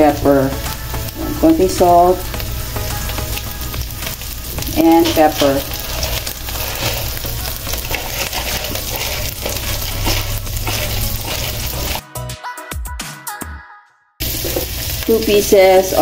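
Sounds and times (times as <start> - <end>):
food sizzling in hot oil: 0.0 - 12.0, 14.2 - 16.0.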